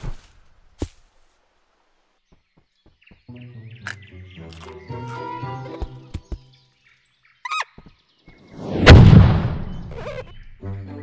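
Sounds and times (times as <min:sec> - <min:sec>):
loud sudden impact: 0:08.6 - 0:09.9
short squeak: 0:09.9 - 0:10.4.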